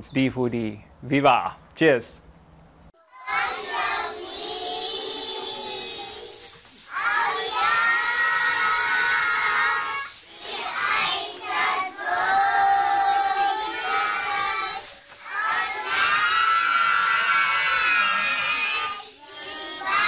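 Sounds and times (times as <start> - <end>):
small children singing together: 3.0 - 20.0.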